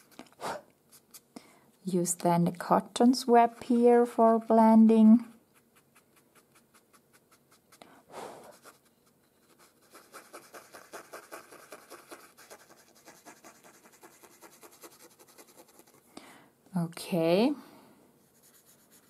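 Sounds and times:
cotton swab rubbing on paper: 0:05.2 - 0:07.8, 0:08.4 - 0:16.0, 0:18.2 - 0:19.0.

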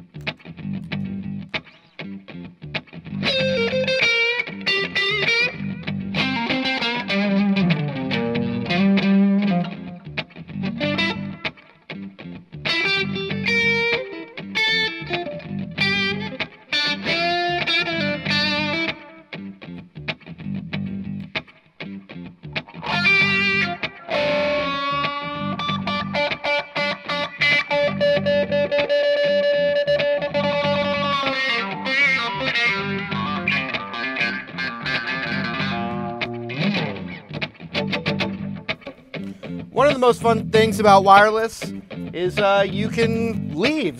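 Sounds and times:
electric guitar with effects: 0:00.0 - 0:43.9.

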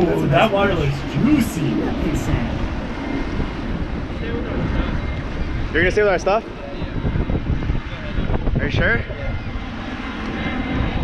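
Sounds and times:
jet airliner passing overhead: 0:00.0 - 0:11.0.

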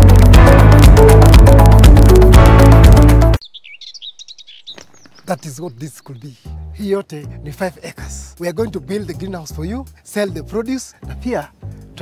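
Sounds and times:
loud music: 0:00.0 - 0:03.4
small birds chirping: 0:03.4 - 0:07.2.

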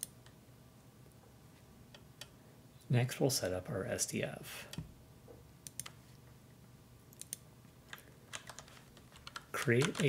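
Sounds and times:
computer keyboard key clicks: 0:07.2 - 0:10.0.

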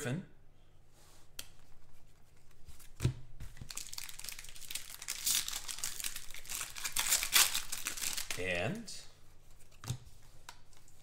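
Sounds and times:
plastic wrapper crinkling and tearing: 0:03.6 - 0:08.4.

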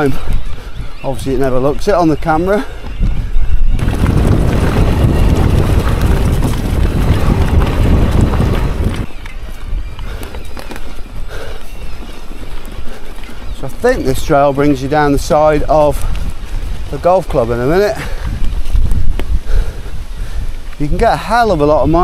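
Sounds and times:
bike rattling over rough ground: 0:00.0 - 0:22.0
wind rushing over microphone: 0:00.0 - 0:22.0
bike tyre roar on dirt trail: 0:01.7 - 0:21.0.

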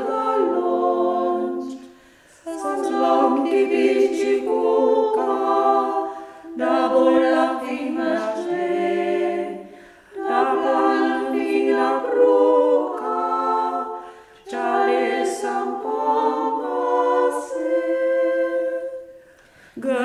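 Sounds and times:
women singing a cappella: 0:00.0 - 0:20.0.

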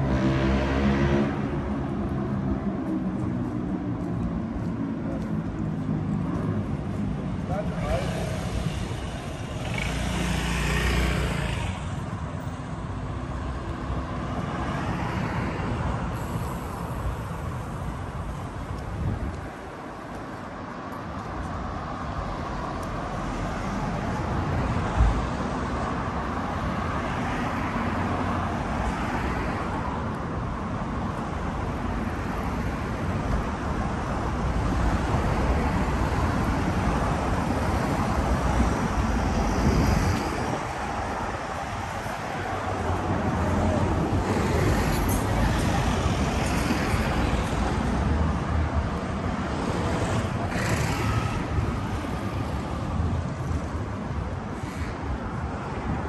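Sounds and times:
road traffic passing: 0:00.0 - 0:56.0.

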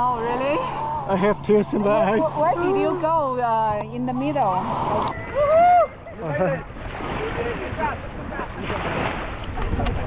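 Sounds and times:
lake waves lapping: 0:00.0 - 0:10.0
wind rumbling on microphone: 0:02.3 - 0:10.0.

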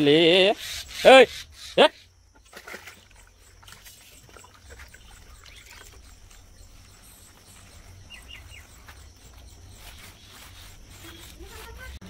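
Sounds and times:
wet rubbing strokes: 0:03.6 - 0:12.0.

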